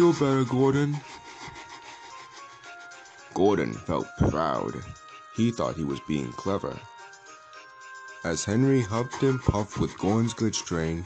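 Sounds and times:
soft background music: 0.0 - 11.0
toy train motor grinding: 0.0 - 11.0.

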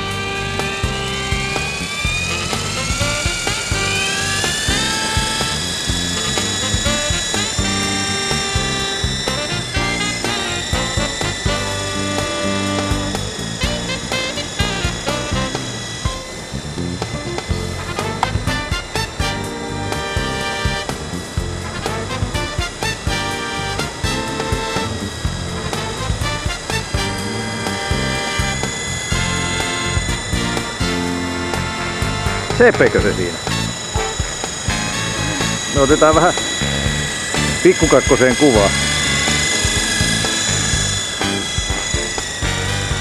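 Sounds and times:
background music with beat: 0.0 - 43.0
helicopter motors whining: 0.0 - 43.0.

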